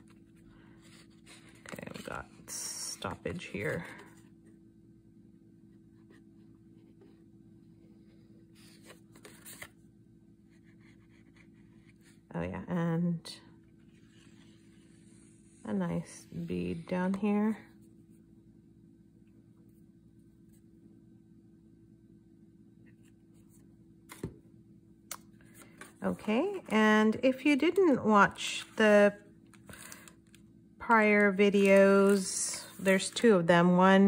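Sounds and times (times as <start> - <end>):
card stock rustling: 0.0 - 4.2, 8.6 - 9.8, 29.5 - 30.4, 31.2 - 33.5
steady low hum: 0.0 - 34.0.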